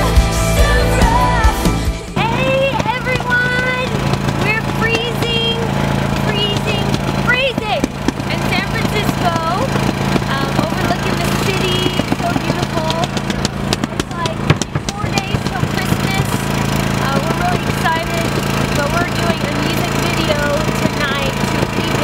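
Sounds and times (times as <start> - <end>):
generator engine humming: 0.0 - 22.0
indistinct voices: 0.0 - 22.0.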